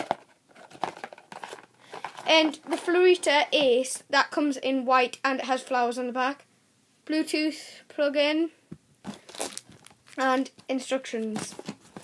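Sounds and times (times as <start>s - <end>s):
packaging rustling and crinkling: 0.0s - 3.3s, 9.0s - 10.6s, 11.2s - 12.0s.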